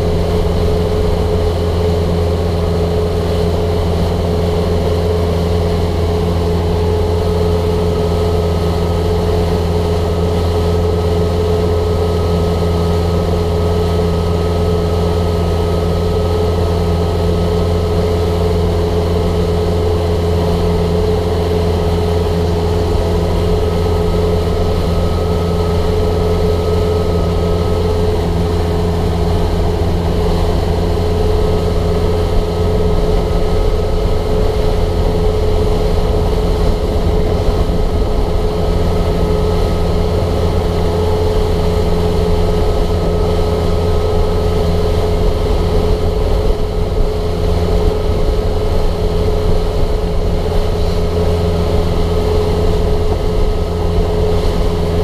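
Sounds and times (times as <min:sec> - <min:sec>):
motorboat engine running: 0:00.0 - 0:55.0.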